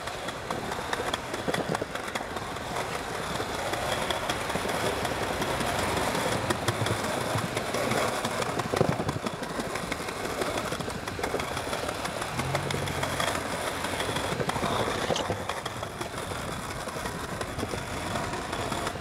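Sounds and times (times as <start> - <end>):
skateboard knock: 0.0 - 19.0
skateboard wheels clicking over cracks: 0.0 - 19.0
skateboard wheels rolling on pavement: 0.0 - 19.0.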